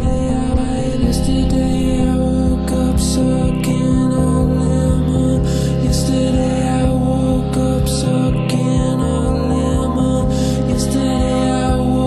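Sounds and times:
slow sustained chords: 0.0 - 12.0.

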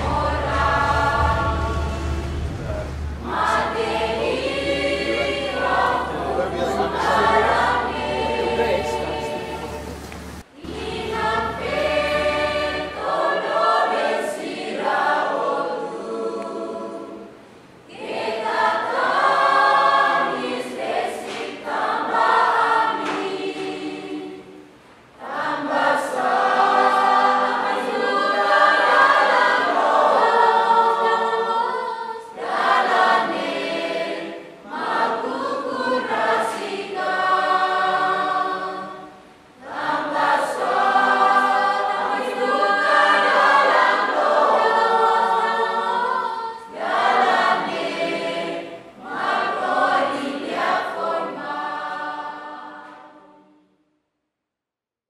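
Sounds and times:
choir singing: 0.0 - 54.0.

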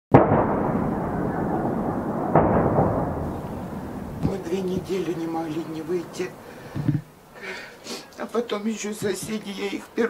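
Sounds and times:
shelling explosions: 0.1 - 7.4.

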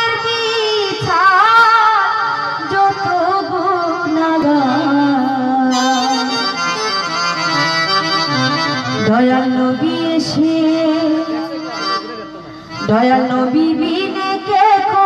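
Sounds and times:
woman singing into a microphone: 0.0 - 6.6, 8.9 - 12.0, 12.7 - 15.0
instrumental accompaniment: 0.0 - 15.0.

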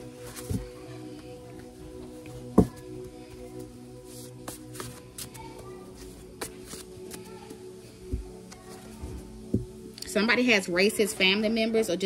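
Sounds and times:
soft background music: 0.0 - 12.0
cards being shuffled: 4.1 - 7.6.

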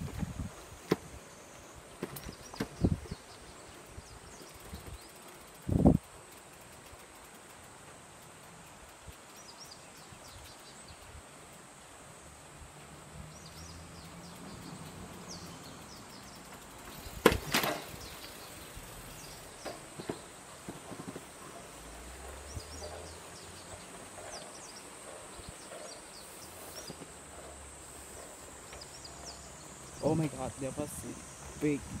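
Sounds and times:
high insect drone: 0.0 - 32.0
small ticks: 0.8 - 31.8
sharp knock with rattle: 17.2 - 17.9.

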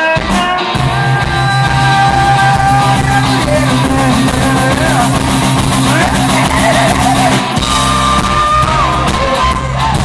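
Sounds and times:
distorted electric guitar lead: 0.0 - 10.0
live rock band: 0.0 - 10.0.

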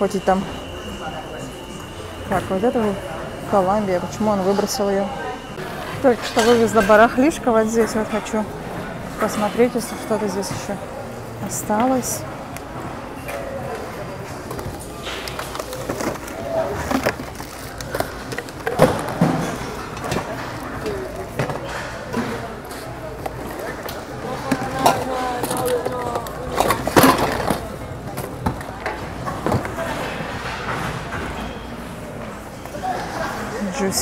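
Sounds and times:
plastic items clattering in a bin: 14.4 - 31.3.

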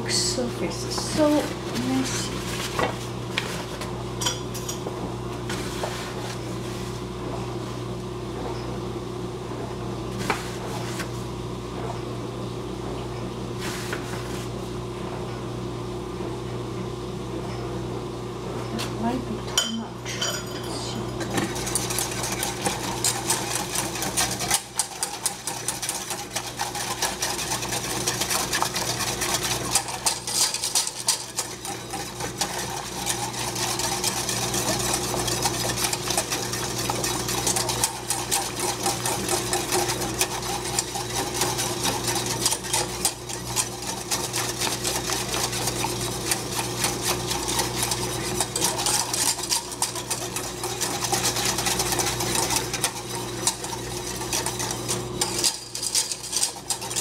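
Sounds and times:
whisk beating in a steel saucepan: 0.2 - 4.9, 19.1 - 57.0.

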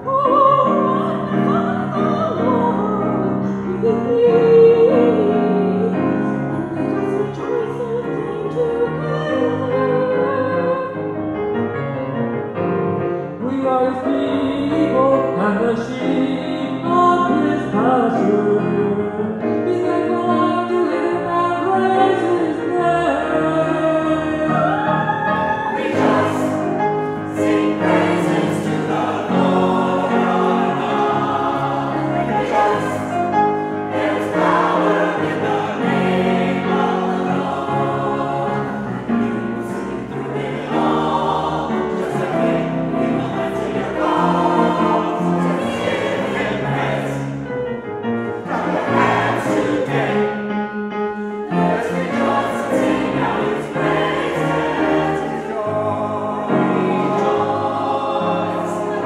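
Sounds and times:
choir singing in harmony: 0.0 - 59.0.

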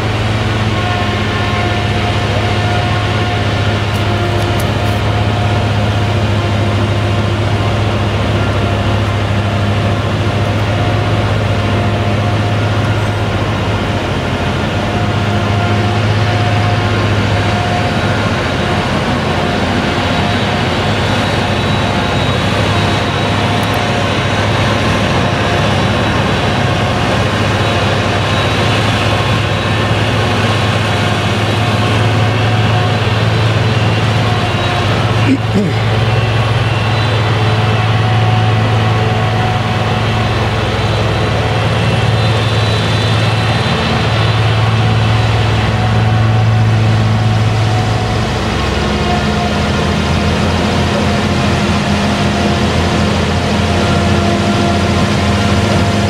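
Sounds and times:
high-pitched whine: 0.0 - 56.0
loud engine drone: 0.0 - 56.0.

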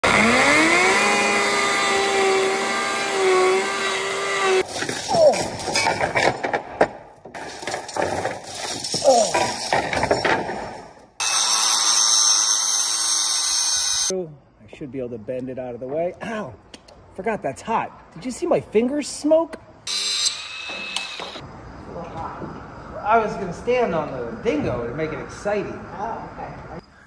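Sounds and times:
knocking and rattling: 4.6 - 11.1.

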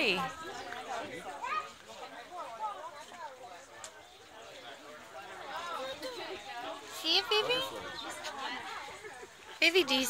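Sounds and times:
child and adults chattering: 0.0 - 10.0.

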